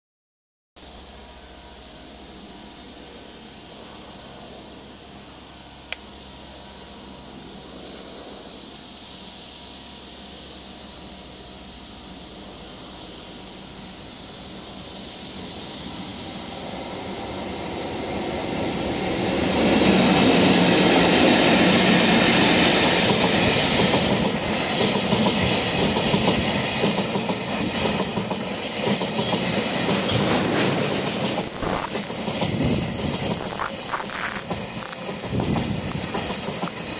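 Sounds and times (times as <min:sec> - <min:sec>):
freight train passing: 0:00.8 - 0:36.9
wagons clattering over rail joints: 0:23.1 - 0:36.9.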